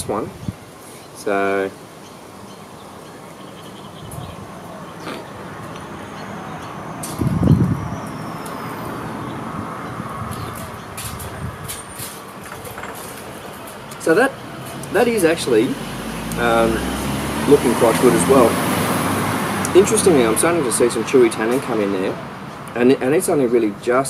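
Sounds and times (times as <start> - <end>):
vehicle passing: 3.5 - 23.9.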